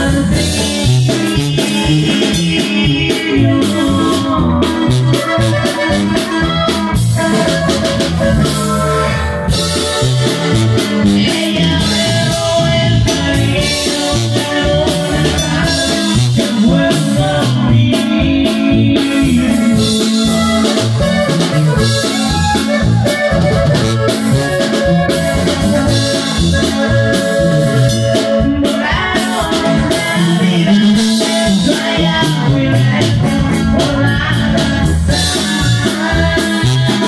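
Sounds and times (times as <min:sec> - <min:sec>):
drum beat: 0:00.0 - 0:36.9
accordion melody: 0:00.0 - 0:37.0
bouncing bass line: 0:00.0 - 0:37.0.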